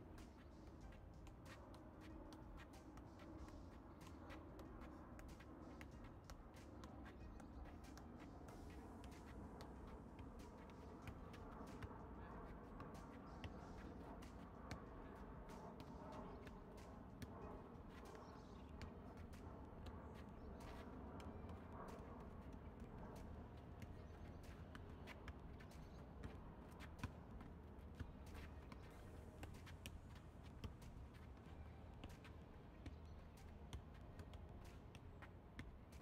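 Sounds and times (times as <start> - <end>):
low steady background hum: 0.0 - 36.0.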